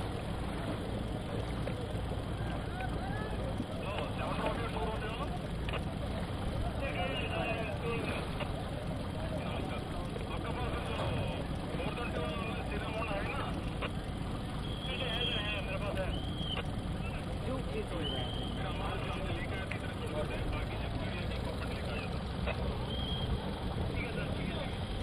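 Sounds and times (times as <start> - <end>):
boat motor running: 0.0 - 25.0
people talking: 0.0 - 25.0.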